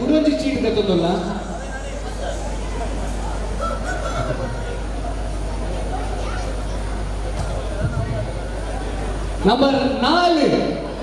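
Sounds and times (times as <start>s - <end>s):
background chatter: 0.0s - 11.0s
steady low hum: 0.0s - 11.0s.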